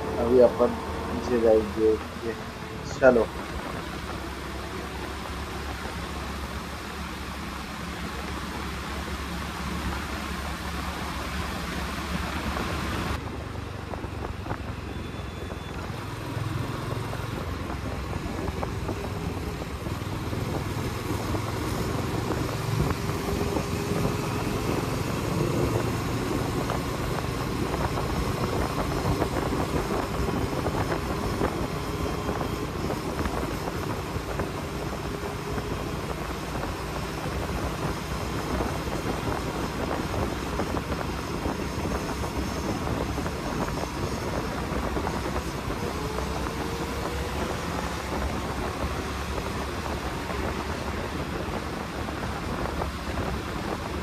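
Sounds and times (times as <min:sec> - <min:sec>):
motorcycle engine cruising: 0:00.0 - 0:54.0
wind rushing over microphone: 0:00.0 - 0:54.0.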